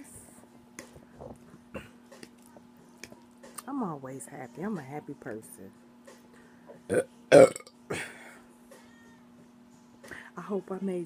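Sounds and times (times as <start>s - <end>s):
woman burping: 6.9s - 8.3s.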